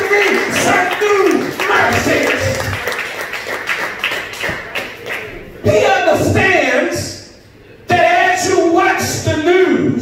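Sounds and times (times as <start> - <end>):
hand claps: 0.0 - 5.3.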